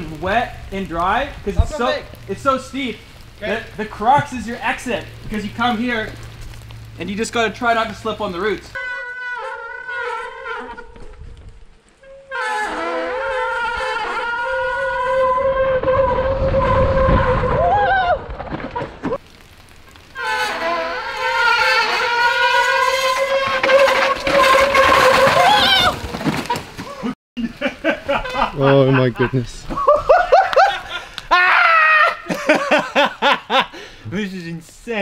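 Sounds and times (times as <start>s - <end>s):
tyre and trail rumble: 0.0s - 9.1s, 12.6s - 27.2s.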